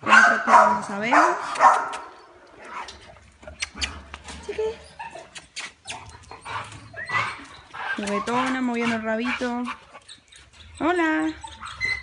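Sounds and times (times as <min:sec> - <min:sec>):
dog whining: 0:03.8 - 0:08.6, 0:10.0 - 0:12.0.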